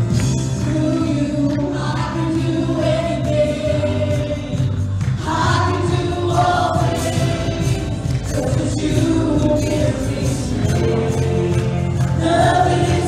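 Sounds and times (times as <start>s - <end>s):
drums: 0.0s - 13.0s
keyboard: 0.0s - 13.0s
group singing long notes: 0.6s - 13.0s.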